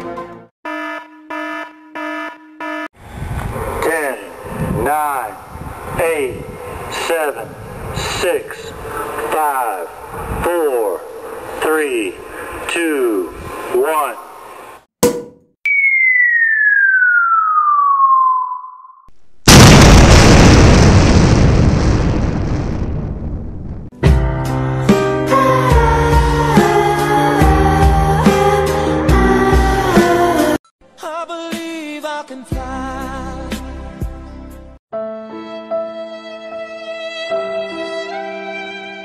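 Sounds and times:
electronic alarm buzzer: 0:00.7 - 0:02.9
falling tone: 0:15.2 - 0:23.9
loud explosion: 0:19.4 - 0:23.9
low rumbling noise: 0:19.5 - 0:23.9.

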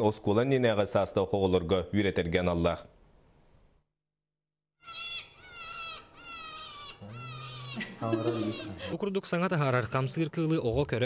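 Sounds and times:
high-pitched falling calls: 0:04.8 - 0:08.8.

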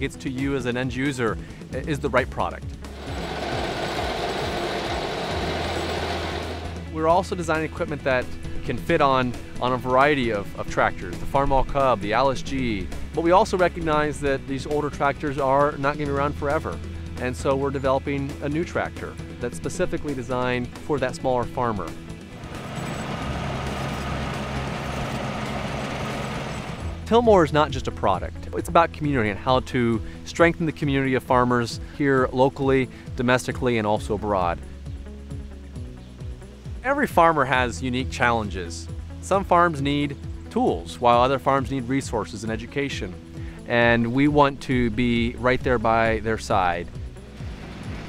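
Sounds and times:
mechanical clatter: 0:03.0 - 0:06.8
tractor and planter clattering: 0:03.0 - 0:06.8, 0:22.4 - 0:27.0.

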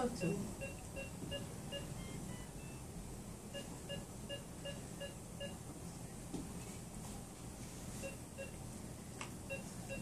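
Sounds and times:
medical monitor beeping: 0:00.0 - 0:05.6, 0:08.0 - 0:08.6, 0:09.4 - 0:10.0.

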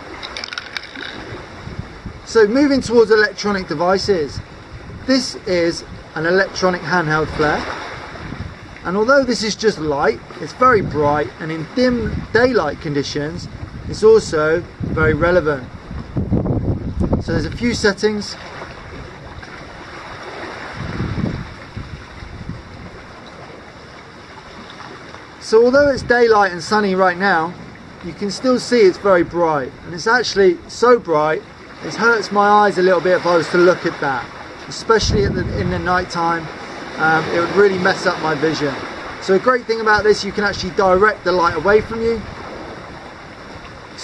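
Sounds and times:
sea: 0:00.0 - 0:44.0
wind: 0:00.0 - 0:44.0.

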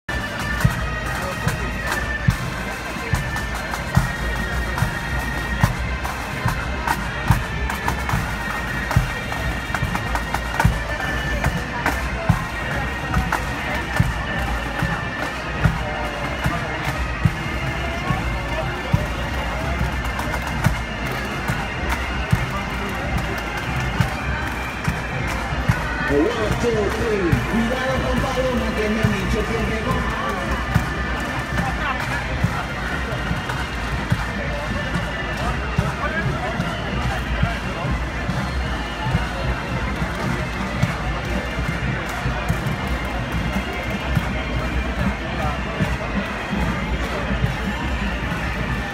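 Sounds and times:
crowd voices: 0:00.0 - 0:48.9
bagpipe music: 0:00.1 - 0:48.9.

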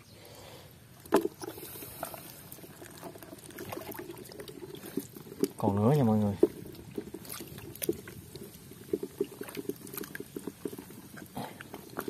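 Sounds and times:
small drips and wet clicks: 0:00.9 - 0:12.0
water splashing in muddy pool: 0:01.0 - 0:12.0.

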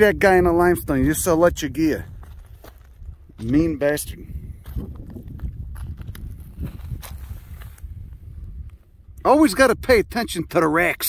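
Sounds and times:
wind rumble on microphone: 0:00.0 - 0:11.0
footsteps on gravel: 0:01.9 - 0:08.0.

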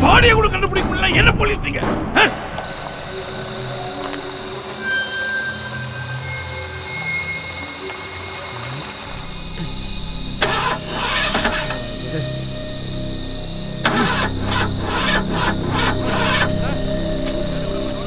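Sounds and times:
film music: 0:00.0 - 0:18.0
insects chirring: 0:00.0 - 0:18.0
van engine cranking and firing: 0:09.1 - 0:18.0.

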